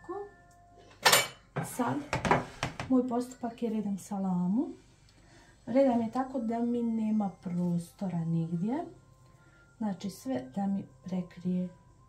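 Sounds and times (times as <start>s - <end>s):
woman speaking: 1.6s - 2.1s, 2.9s - 4.8s, 5.7s - 9.0s, 9.8s - 11.8s.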